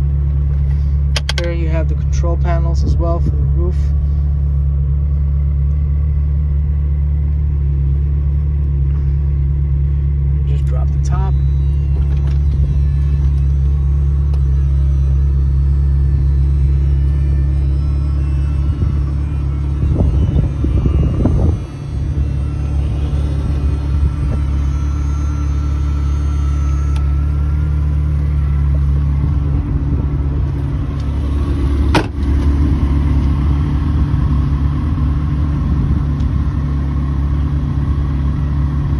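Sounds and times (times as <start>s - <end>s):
car engine idling: 0.0s - 38.9s.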